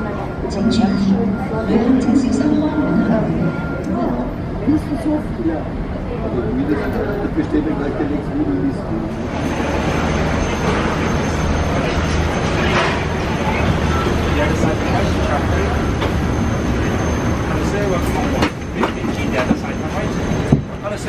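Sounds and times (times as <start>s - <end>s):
indistinct voices: 0.0s - 21.0s.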